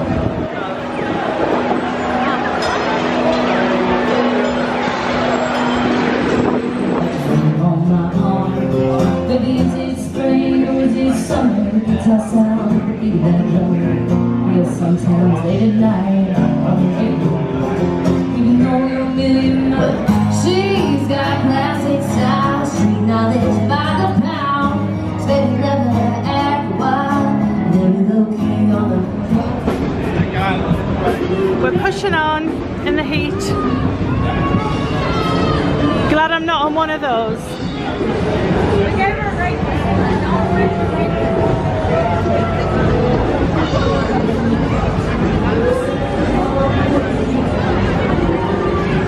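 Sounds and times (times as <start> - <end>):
wind on microphone: 0.0 - 2.8, 4.6 - 7.6
steady low bass line: 0.0 - 20.6
acoustic guitars: 0.0 - 49.0
traffic running: 0.0 - 49.0
woman singing: 7.2 - 17.4, 18.2 - 29.8.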